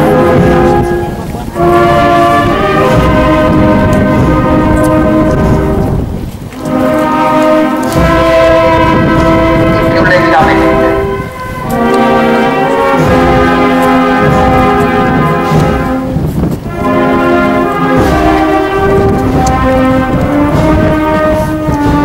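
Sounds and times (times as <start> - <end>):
brass band playing chords: 0.0 - 22.0.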